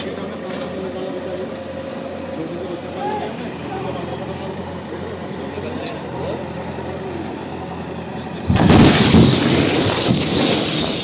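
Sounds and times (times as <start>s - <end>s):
diesel engines running: 0.0s - 11.0s
loud rumble: 2.3s - 11.0s
very loud explosion: 8.5s - 11.0s.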